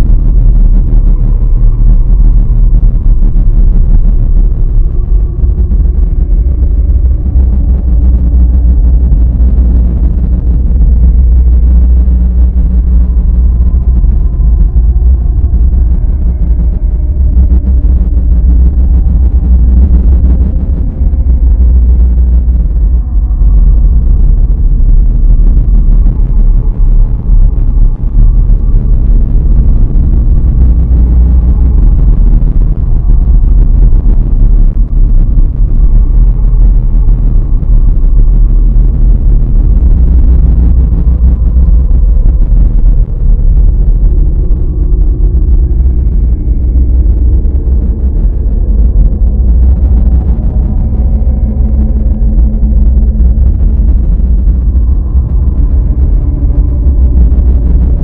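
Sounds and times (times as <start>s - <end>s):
dense low rumble: 0.0s - 58.0s.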